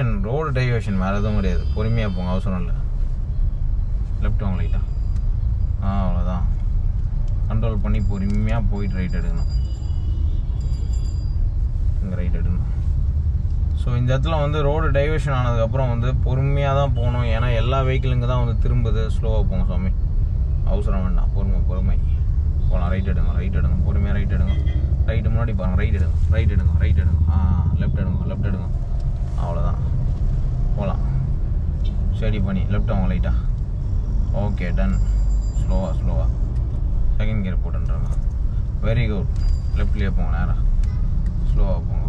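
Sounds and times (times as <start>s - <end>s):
car engine rumble: 0.0s - 42.0s
road noise inside car: 0.0s - 42.0s.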